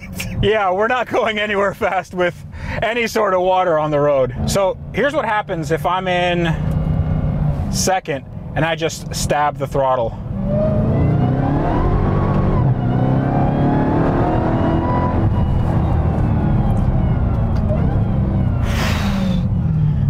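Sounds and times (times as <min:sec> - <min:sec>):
car engine at full throttle: 0:06.1 - 0:20.0.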